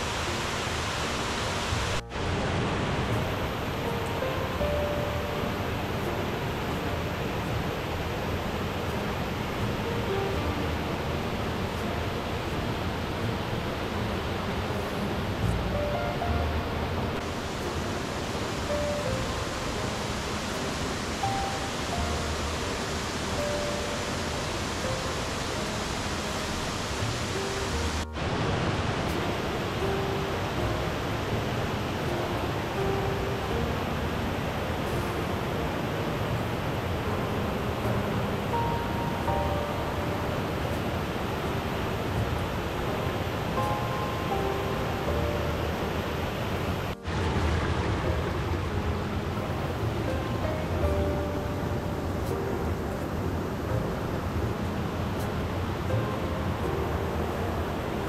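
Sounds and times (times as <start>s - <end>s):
soft music of held notes: 0.0s - 58.0s
waterfall rushing: 0.0s - 58.0s.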